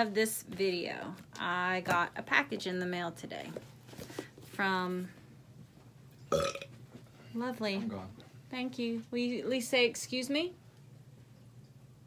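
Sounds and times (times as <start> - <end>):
person burping: 6.3 - 6.7.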